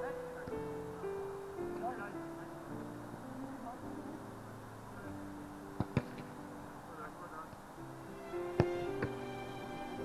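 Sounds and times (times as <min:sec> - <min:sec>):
faint steady tones: 0:00.0 - 0:10.0
football being kicked: 0:05.8 - 0:06.3.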